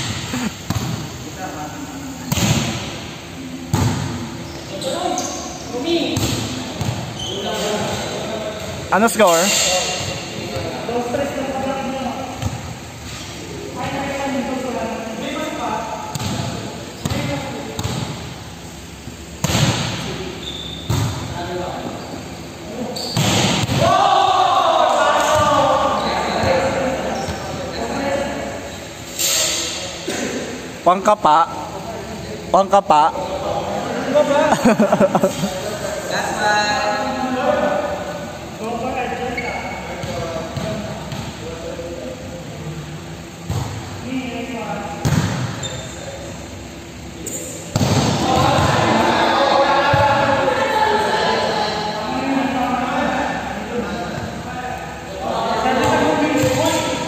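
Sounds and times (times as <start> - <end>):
volleyball hits ringing in hall: 0.0 - 4.4, 5.7 - 11.2, 19.4 - 21.6, 23.1 - 27.9, 47.2 - 51.9
volleyball smacks on gym floor: 19.4 - 20.0, 23.2 - 23.9, 47.7 - 48.5.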